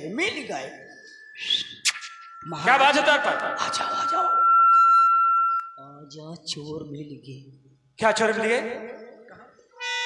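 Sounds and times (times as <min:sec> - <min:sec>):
microphone feedback squeal: 0:00.6 - 0:06.0.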